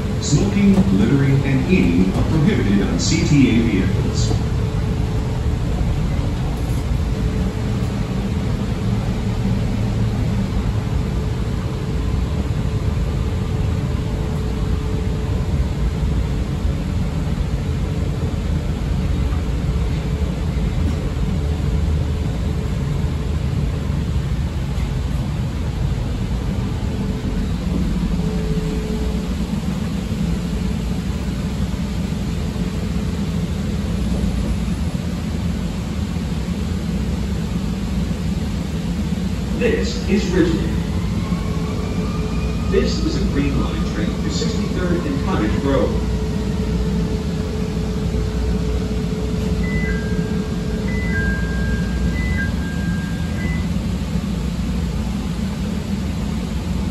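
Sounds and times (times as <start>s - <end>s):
train wheels rumbling on rail: 0.0s - 56.9s.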